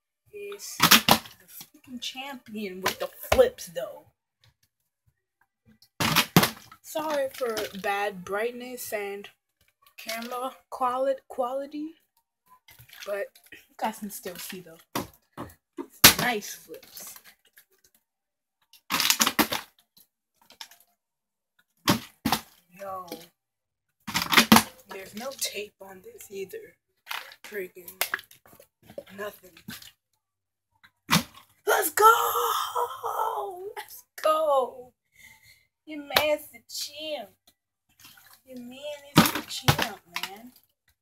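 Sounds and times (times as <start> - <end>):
plastic water bottle clattering: 0.8 - 1.7, 6.0 - 7.9, 12.7 - 13.6, 18.9 - 19.8, 21.9 - 23.2, 24.1 - 25.5, 27.0 - 29.9, 39.1 - 40.6.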